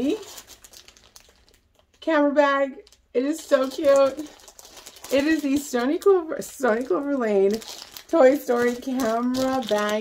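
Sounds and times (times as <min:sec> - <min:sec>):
plastic wrapping crinkling: 0:00.0 - 0:10.0
person speaking: 0:05.1 - 0:10.0.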